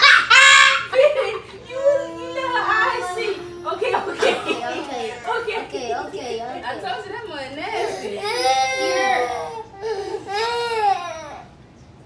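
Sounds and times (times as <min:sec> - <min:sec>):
girl crying and wailing: 0:01.6 - 0:05.7, 0:07.7 - 0:11.4.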